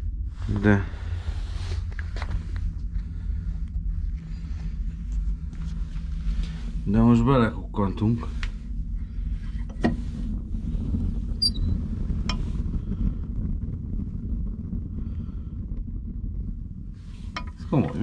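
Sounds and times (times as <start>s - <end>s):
fire burning in wood stove: 0.0s - 18.0s.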